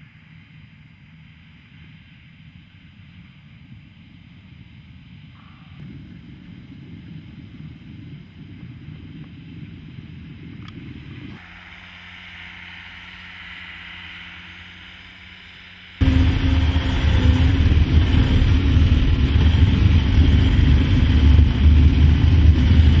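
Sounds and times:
tracked vehicle engine hum: 0.0s - 23.0s
engine and track rumble in cab: 10.6s - 23.0s.

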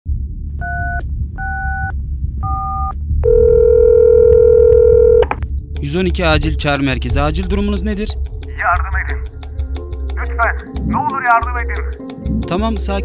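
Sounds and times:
telephone ringing tone: 3.2s - 5.3s
phone line click: 3.2s - 5.4s.

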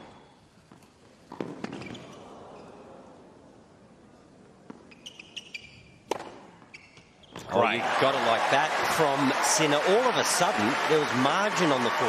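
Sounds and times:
tennis shoes squeaking on court: 0.0s - 2.8s, 4.6s - 7.5s
tennis ball struck by racket: 6.1s - 6.6s.

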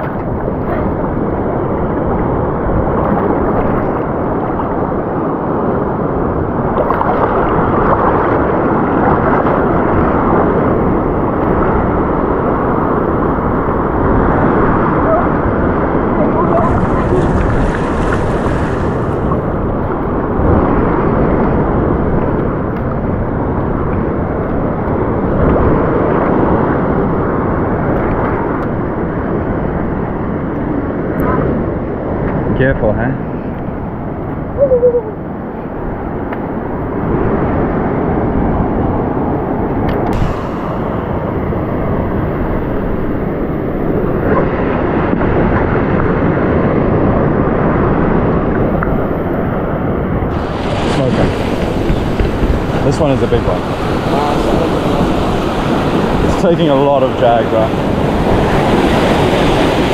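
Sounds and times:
surf washing around rocks: 0.0s - 59.9s
wind buffeting microphone: 0.0s - 59.9s.

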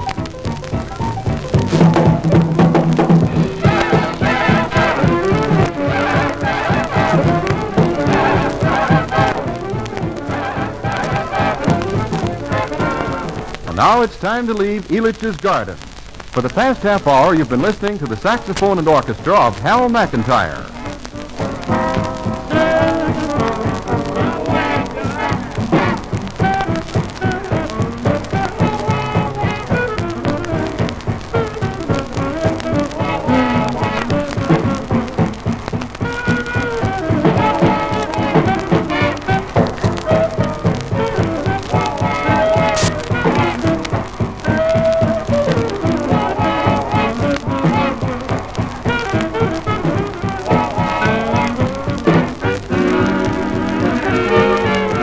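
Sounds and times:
swing band with saxophones and brass: 0.0s - 55.0s.

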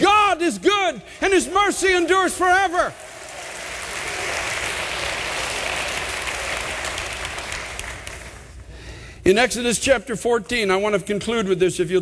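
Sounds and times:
crowd applauding: 0.4s - 8.6s.

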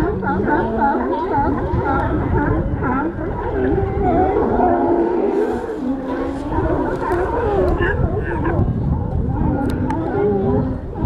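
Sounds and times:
sea lions barking and calling: 0.0s - 11.0s.

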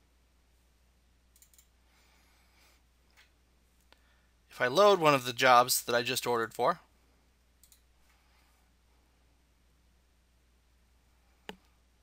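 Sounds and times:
computer mouse click: 1.3s - 1.7s, 7.6s - 7.9s.

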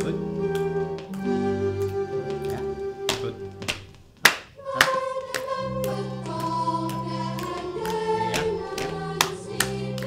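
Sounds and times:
hands clapping: 0.5s - 10.0s.

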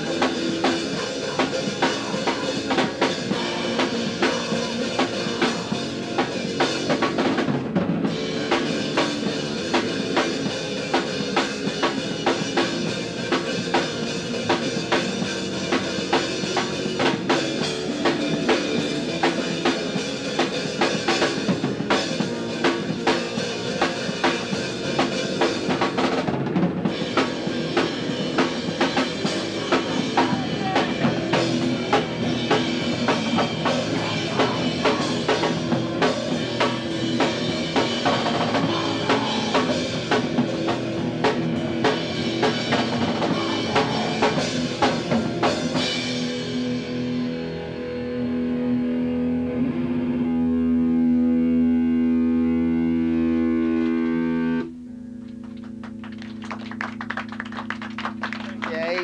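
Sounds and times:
drum kit pounding: 0.0s - 47.5s, 55.6s - 59.0s
distorted electric guitars: 0.0s - 59.0s.

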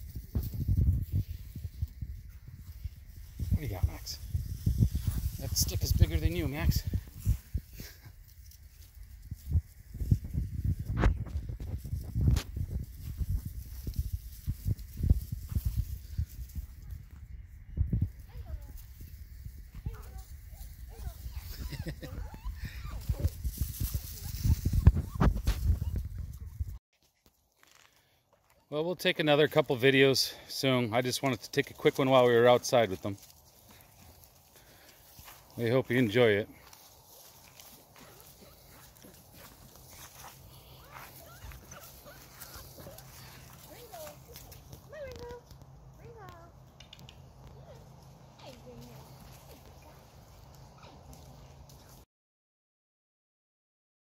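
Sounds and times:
rustling of dry leaves: 0.0s - 52.0s.

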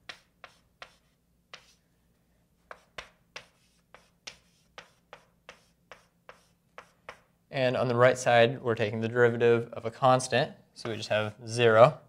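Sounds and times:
writing tip tapping on board: 0.0s - 1.7s.

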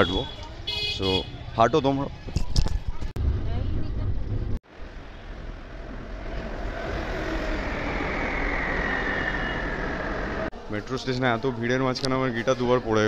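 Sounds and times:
faint whine: 4.7s - 10.5s
metro train rushing hum: 4.8s - 10.6s.

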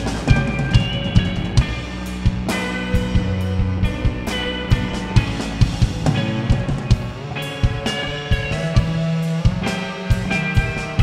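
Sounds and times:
drum kit steady beat: 0.0s - 11.0s
sustained electric guitar notes: 0.0s - 11.0s.

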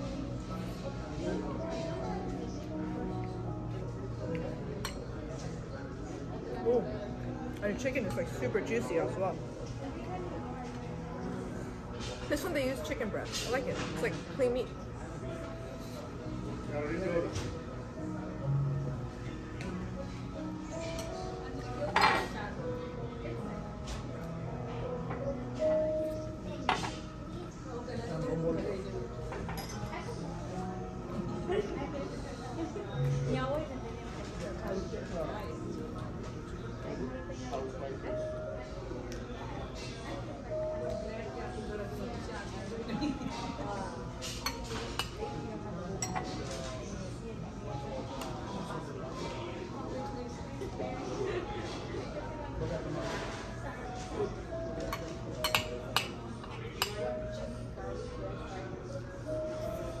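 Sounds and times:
background music: 0.0s - 60.0s
murmur of background voices: 0.0s - 60.0s
cutlery clinking on dishes: 21.9s - 22.4s, 29.3s - 29.9s, 44.2s - 45.3s, 46.0s - 46.7s, 54.8s - 57.0s.

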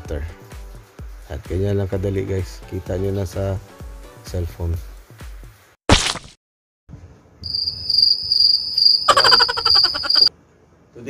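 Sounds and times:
cricket high trill: 7.4s - 10.3s
rapidly pulsing insect call: 7.5s - 10.3s.

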